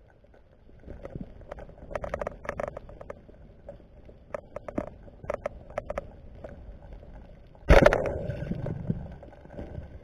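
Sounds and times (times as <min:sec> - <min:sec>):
underwater clicks and knocks: 0:00.8 - 0:03.3, 0:04.3 - 0:06.6.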